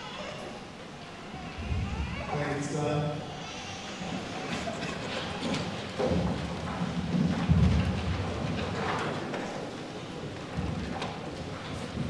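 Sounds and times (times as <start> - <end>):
microphone handling rumble: 1.6 - 2.4.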